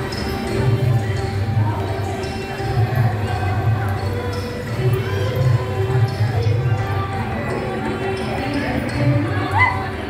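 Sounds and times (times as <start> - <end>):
crowd voices: 0.0 - 10.0.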